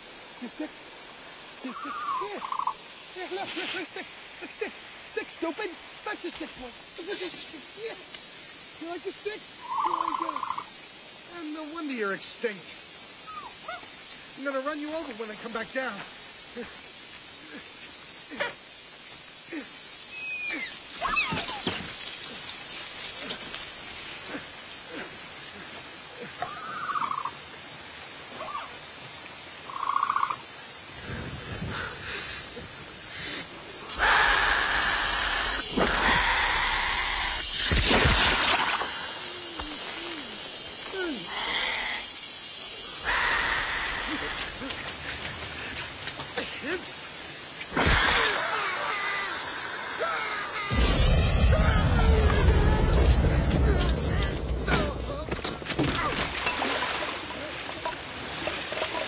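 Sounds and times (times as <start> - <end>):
heavy rain falling: 0.0 - 59.0
loud wet splat: 37.5 - 39.0, 47.7 - 48.5
low rumble: 50.7 - 55.3.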